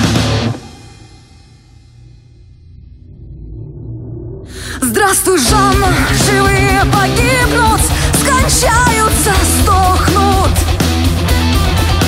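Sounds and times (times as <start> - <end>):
hard rock full band: 0.0 - 1.3, 5.4 - 12.0.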